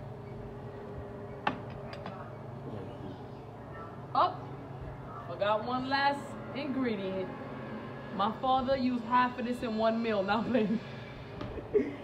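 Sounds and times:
low kitchen hum: 0.0s - 12.0s.

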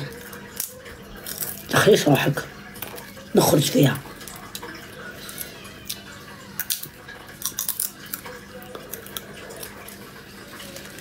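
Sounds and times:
seeds cracking between teeth: 6.6s - 9.9s.

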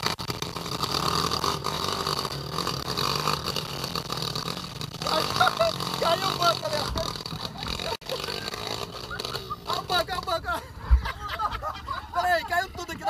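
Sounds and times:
dirt bike engine running: 0.0s - 13.0s
voices: 5.0s - 13.0s.

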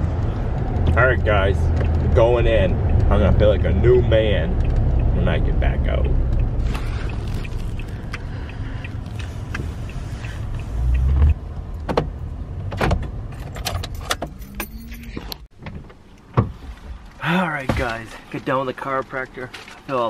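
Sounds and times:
engine and road rumble: 0.0s - 20.0s.

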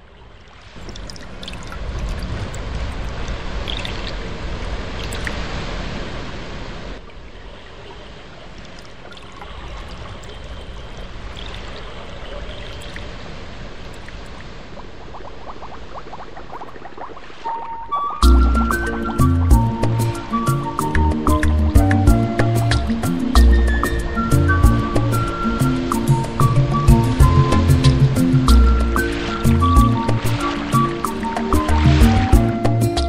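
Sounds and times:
running water: 0.0s - 33.0s
deep rumble: 26.2s - 30.5s.

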